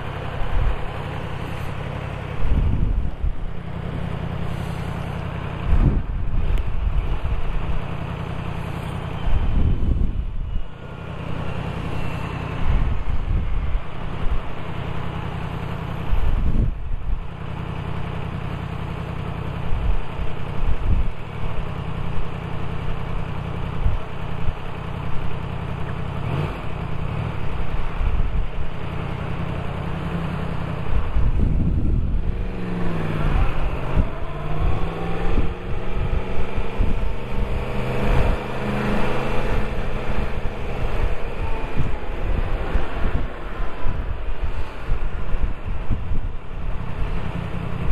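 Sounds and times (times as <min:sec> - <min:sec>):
motorcycle engine idling: 0:00.0 - 0:32.4
motorcycle engine revving: 0:29.0 - 0:47.9.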